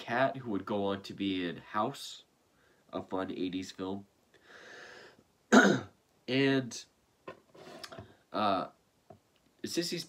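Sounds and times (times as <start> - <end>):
faint hiss: 0.0 - 10.0
man clearing his throat: 5.5 - 6.0.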